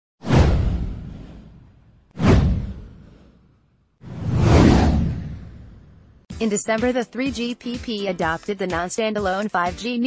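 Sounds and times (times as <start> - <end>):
whoosh with deep boom: 0.2 - 6.3.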